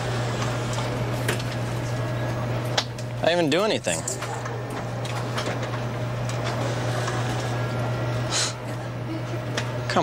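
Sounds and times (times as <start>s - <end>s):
photocopier humming: 0.0s - 10.0s.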